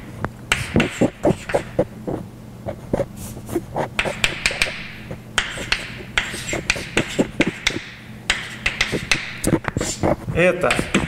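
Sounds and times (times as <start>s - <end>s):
chalk tapping on blackboard: 0.5s - 1.8s, 3.8s - 11.0s
chalk scratching: 0.5s - 11.0s.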